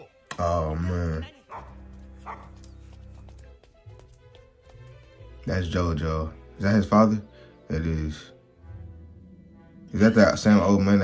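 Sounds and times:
quiet background music: 0.0 - 11.0
dog barking: 1.5 - 2.6.

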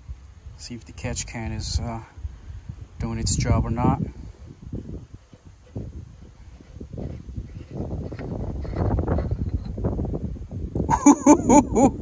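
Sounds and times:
wind rumbling on microphone: 0.0 - 12.0
microphone handling noise: 2.6 - 10.9.

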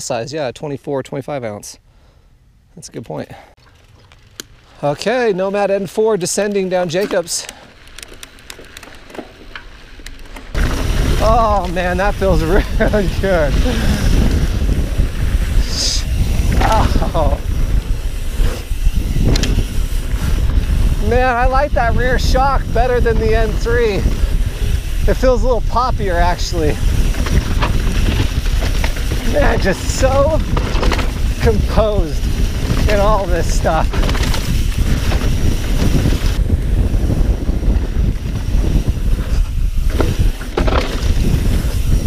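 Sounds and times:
bike tyres on dirt trail: 3.3 - 42.0
wind rumble on microphone: 10.5 - 42.0
bike clacking over rocks: 26.8 - 36.4, 39.8 - 42.0.

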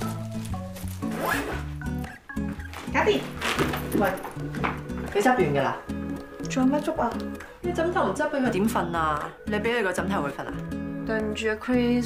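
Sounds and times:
zipper on a nylon bag: 0.0 - 1.8
background music: 0.0 - 12.0.

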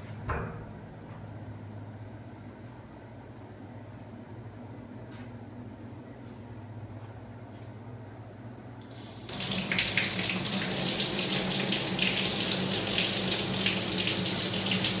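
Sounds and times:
water running from a tap: 9.0 - 15.0.

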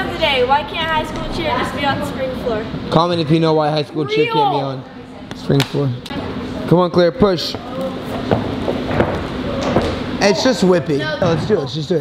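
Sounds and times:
steady background hum: 0.0 - 12.0.

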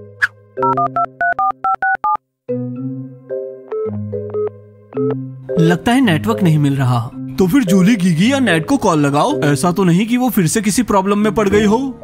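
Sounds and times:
touch-tone dialling beeps: 0.6 - 2.2.

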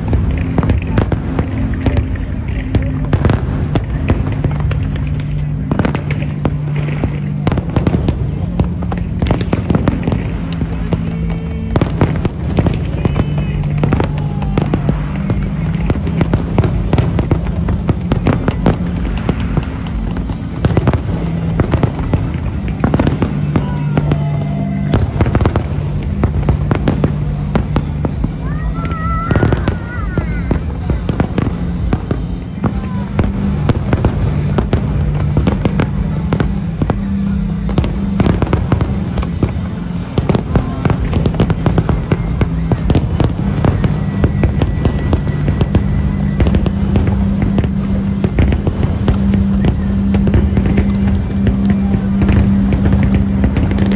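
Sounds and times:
fireworks bangs and crackles: 0.0 - 53.9.

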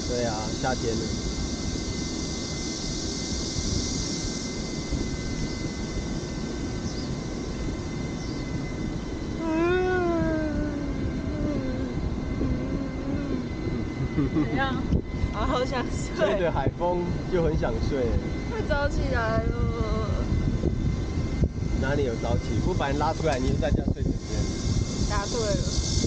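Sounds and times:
wind: 0.0 - 26.0
woman yawning: 9.4 - 13.9.

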